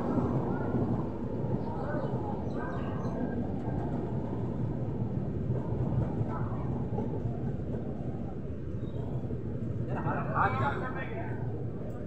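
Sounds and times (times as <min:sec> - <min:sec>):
train wheels rumbling on rail: 0:00.0 - 0:12.0.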